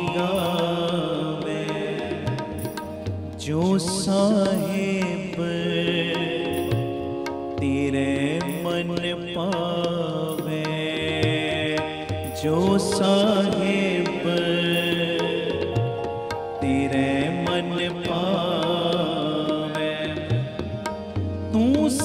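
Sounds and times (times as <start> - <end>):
harmonium drone: 0.0 - 22.0
man singing: 0.0 - 22.0
tabla: 0.0 - 22.0.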